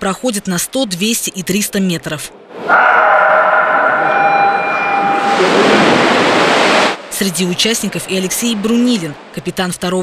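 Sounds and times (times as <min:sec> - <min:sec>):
swimmers splashing water: 0:02.6 - 0:09.7.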